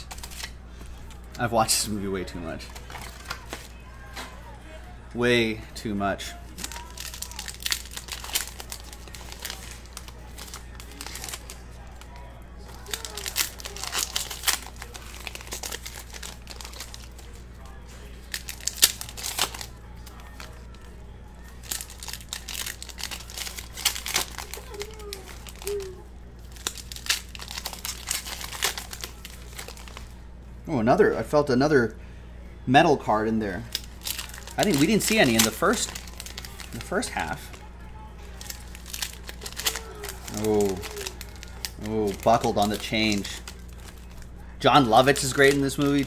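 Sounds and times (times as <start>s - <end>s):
wrappers torn and crinkled: 0.0s - 0.6s, 6.5s - 30.1s, 33.6s - 46.0s
cards being handled: 0.0s - 1.4s, 2.6s - 4.4s, 6.5s - 30.1s, 33.6s - 46.0s.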